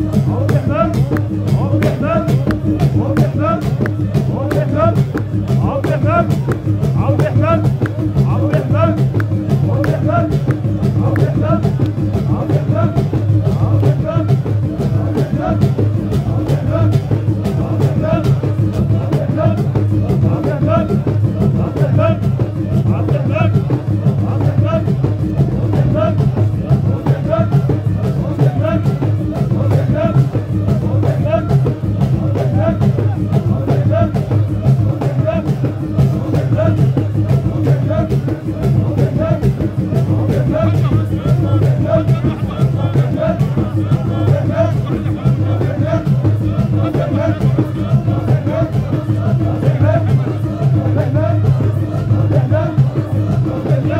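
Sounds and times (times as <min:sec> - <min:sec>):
drums beating fast rhythm: 0:00.0 - 0:53.9
men chanting: 0:00.0 - 0:53.9.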